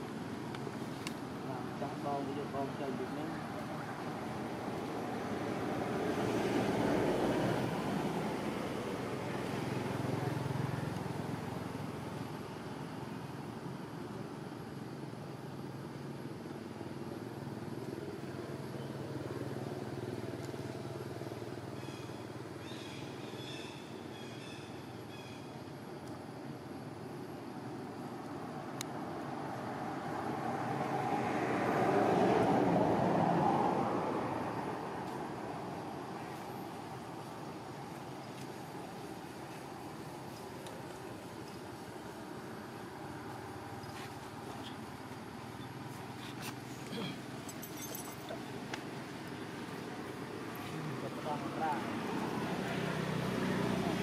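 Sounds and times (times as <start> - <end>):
passing vehicle rumble: 1.3 - 12.7, 27.7 - 54.0.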